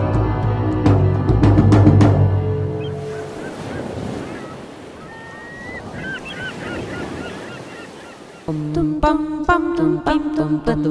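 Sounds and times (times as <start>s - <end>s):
waves: 0.8s - 10.9s
wind: 1.4s - 10.4s
birds calling: 2.7s - 8.6s.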